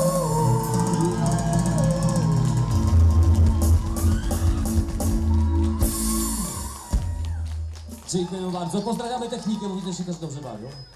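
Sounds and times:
heavy bass and drum beat: 0.0 - 7.6.

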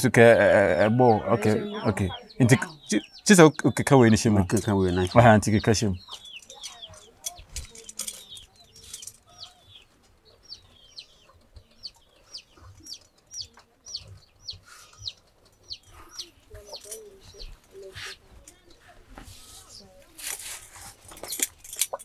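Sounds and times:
birds chirping: 0.0 - 22.0
faint clicks and rustles: 6.0 - 22.0.

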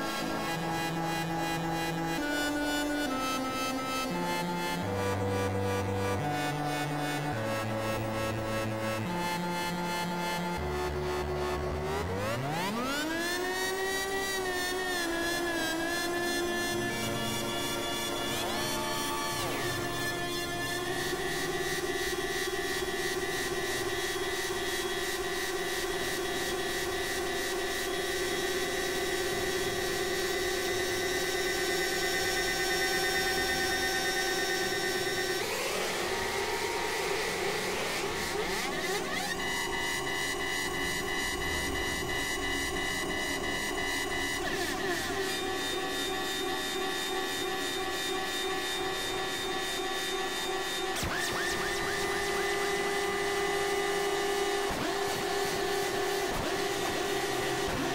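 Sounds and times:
synthesizer drone tones: 0.0 - 57.9.

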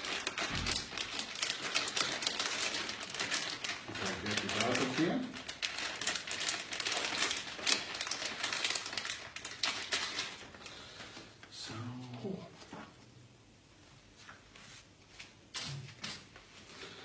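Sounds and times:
plastic items clicking and crinkling: 0.0 - 10.6.

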